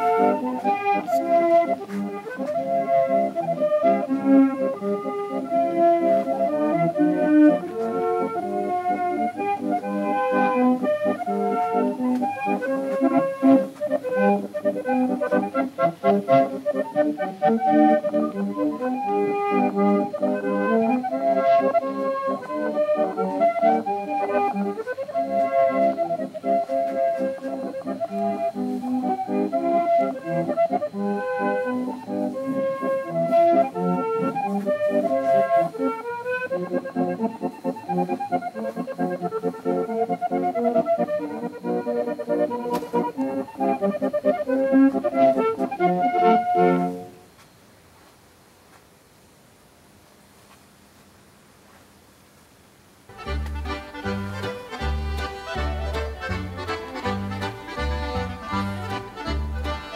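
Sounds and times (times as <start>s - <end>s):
accordion music: 0.0s - 47.3s, 53.1s - 59.9s.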